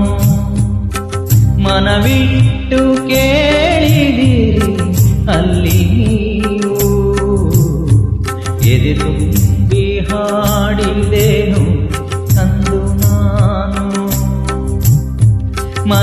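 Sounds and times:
karaoke backing track: 0:00.0 - 0:16.0.

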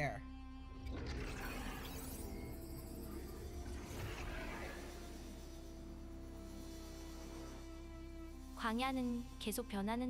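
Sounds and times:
quiet cinematic background music: 0:00.0 - 0:10.0.

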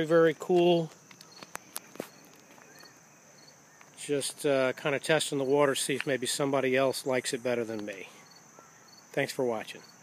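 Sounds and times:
high insect drone: 0:00.0 - 0:10.0.

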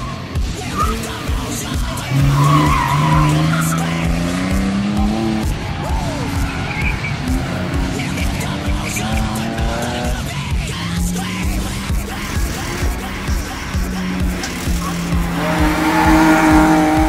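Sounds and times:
car engine revving: 0:00.0 - 0:17.0
music with steady beat: 0:00.0 - 0:17.0
tyre noise: 0:00.0 - 0:17.0.

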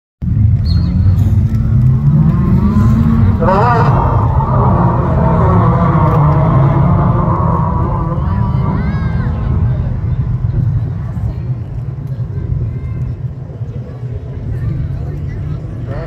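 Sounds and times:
low rumble: 0:00.2 - 0:16.0
racing car engines: 0:00.2 - 0:16.0
engine revving up sharply: 0:00.3 - 0:10.4.

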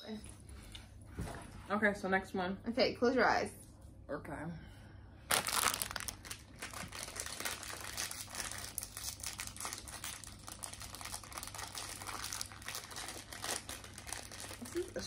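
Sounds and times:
plastic wrapper crinkling: 0:05.3 - 0:15.0.

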